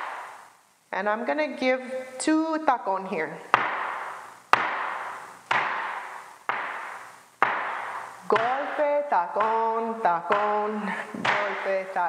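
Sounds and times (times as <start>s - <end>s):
flamenco shoes stamping on wooden floor: 3.6s - 9.7s.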